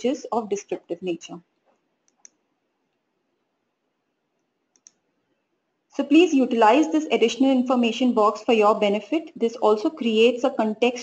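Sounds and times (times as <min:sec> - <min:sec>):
faint room hiss: 0:00.0 - 0:11.0
computer mouse double click: 0:04.7 - 0:05.0.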